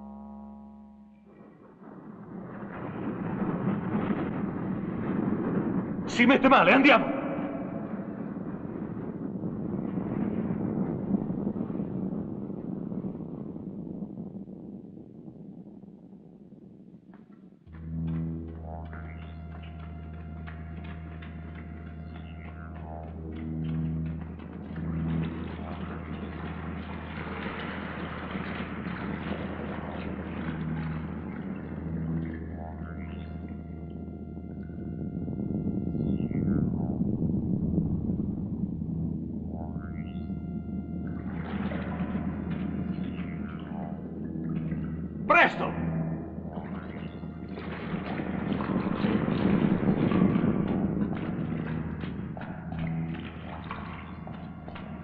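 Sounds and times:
eerie electronic music drone: 0.0 - 14.8, 17.6 - 55.0.

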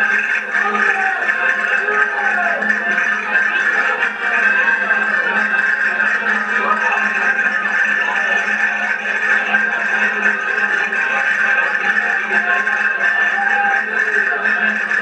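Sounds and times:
accordion folk dance tune: 0.0 - 15.0
crowd chatter: 0.0 - 15.0.

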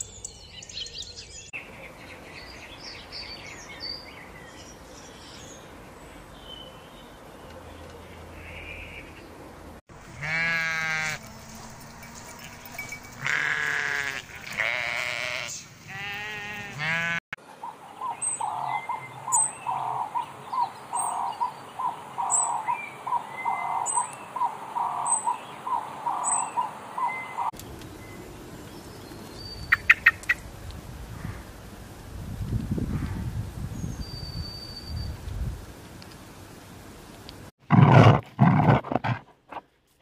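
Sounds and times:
long wavering bleats: 10.0 - 17.2
short evenly spaced calls: 29.7 - 30.4.

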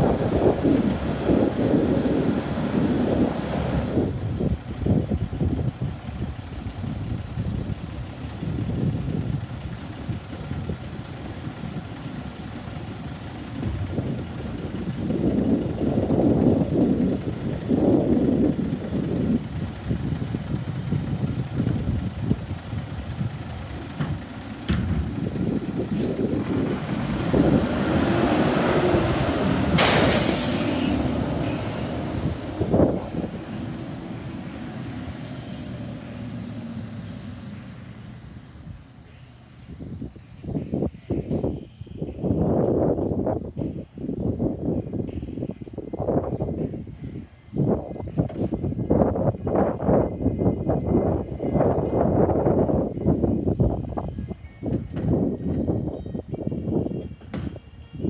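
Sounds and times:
wind buffeting microphone: 0.0 - 36.7, 39.8 - 57.8
garbage truck diesel engine: 0.0 - 41.5
high squeal: 35.3 - 41.9, 43.0 - 44.3.

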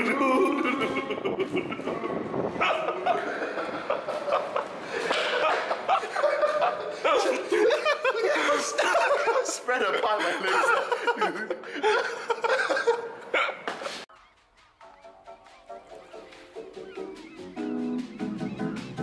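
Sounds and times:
man laughing: 0.0 - 14.0
quiet background music: 14.1 - 19.0.

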